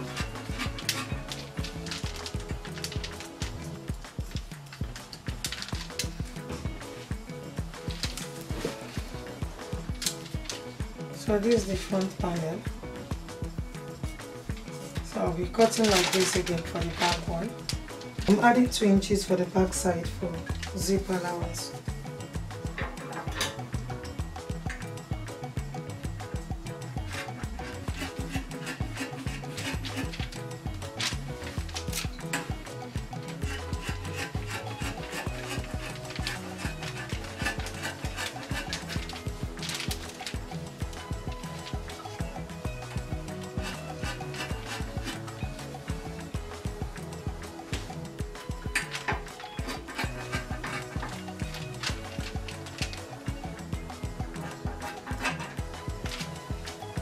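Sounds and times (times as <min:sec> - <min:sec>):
scissors cutting fabric: 0:00.0 - 0:03.6, 0:14.9 - 0:18.6, 0:27.1 - 0:42.0, 0:43.4 - 0:45.6
background music: 0:00.0 - 0:57.0.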